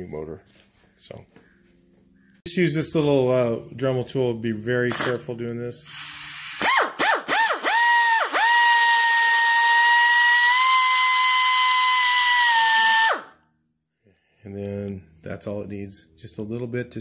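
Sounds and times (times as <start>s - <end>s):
air hiss: 5.8s - 6.8s
pneumatic die grinder whine: 5.9s - 13.3s.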